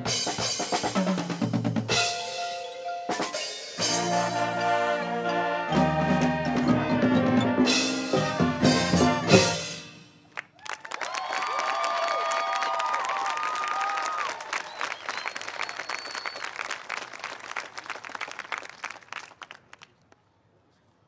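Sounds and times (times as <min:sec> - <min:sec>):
audience applauding and cheering: 0:10.3 - 0:20.0
whistles: 0:14.5 - 0:16.7.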